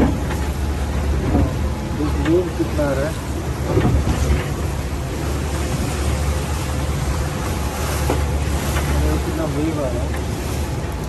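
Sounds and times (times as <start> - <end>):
low motor rumble: 0.0 - 11.0
rushing river water: 0.0 - 11.0.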